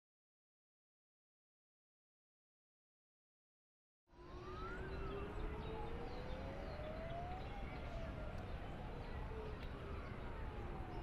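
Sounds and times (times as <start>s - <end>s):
sirens wailing: 4.2s - 11.0s.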